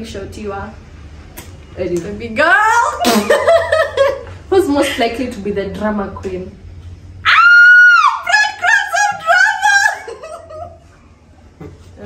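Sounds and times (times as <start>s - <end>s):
whiny cries: 7.2s - 10.8s
woman shrieking: 7.3s - 10.3s.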